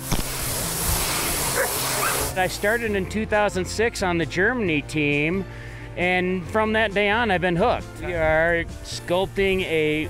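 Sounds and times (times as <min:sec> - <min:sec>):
tool scraping packed snow: 0:00.0 - 0:03.0.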